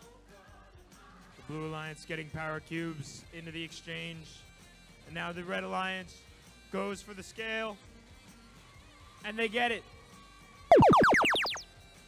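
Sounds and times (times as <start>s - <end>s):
electronic tones sliding down: 10.7s - 11.6s.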